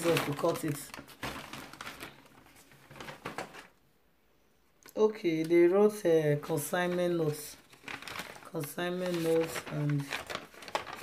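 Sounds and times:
packaging rustling and crinkling: 0.0s - 3.8s, 6.6s - 11.0s.

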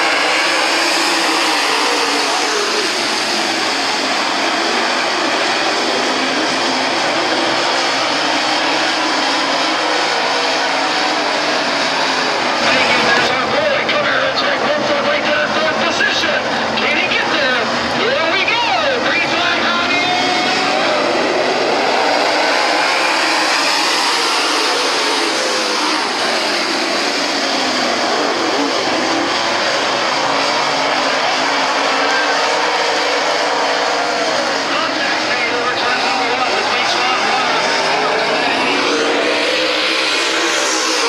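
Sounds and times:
race car engines running hard: 0.0s - 41.0s.

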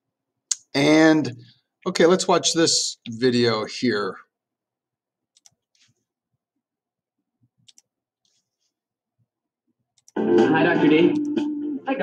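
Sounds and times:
computer mouse clicks: 5.3s - 6.0s, 7.6s - 8.4s, 10.0s - 10.2s.

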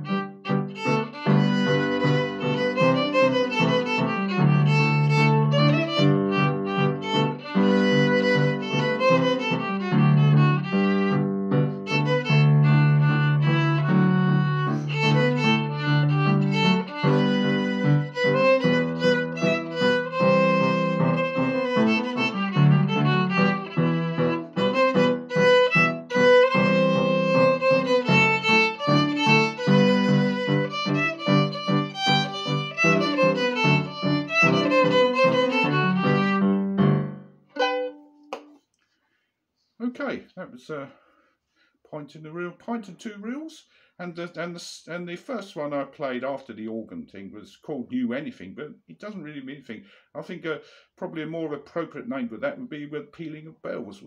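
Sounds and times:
solo fiddle playing reel: 0.0s - 36.6s, 37.6s - 38.1s.

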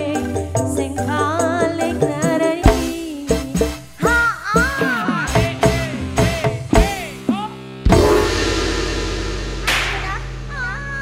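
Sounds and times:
band holding low chord: 7.9s - 11.0s
cymbal crash: 7.9s - 11.0s.

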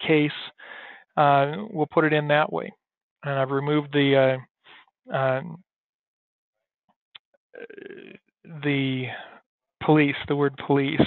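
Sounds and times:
man hesitating uhh: 7.6s - 9.3s.

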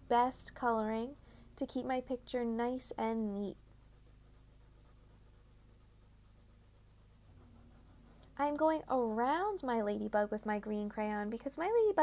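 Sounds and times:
crayon scratching on paper: 0.0s - 9.9s.

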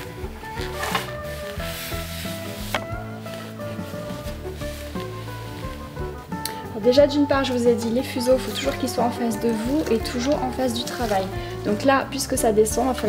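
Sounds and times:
rubbing sliding noise: 0.0s - 6.4s
background music with held notes: 0.0s - 13.0s.

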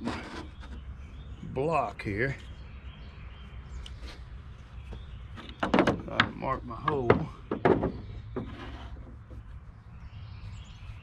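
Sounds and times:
low outdoor background hum: 0.0s - 11.0s
wood knocking on wood: 4.9s - 9.4s.

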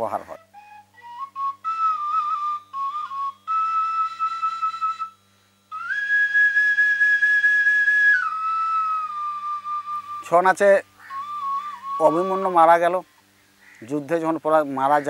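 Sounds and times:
folk flute playing: 0.0s - 13.0s.

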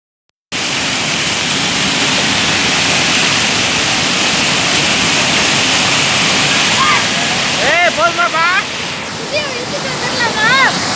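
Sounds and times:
waterfall rushing onto rock: 0.5s - 10.9s
people shouting: 6.6s - 8.6s.

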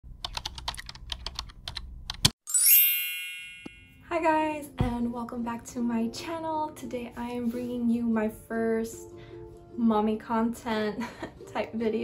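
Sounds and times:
bell ding: 2.5s - 4.0s.

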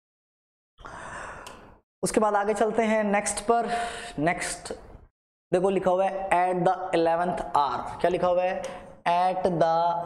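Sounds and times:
person breathing: 0.8s - 1.8s, 3.6s - 4.2s, 8.6s - 9.0s.

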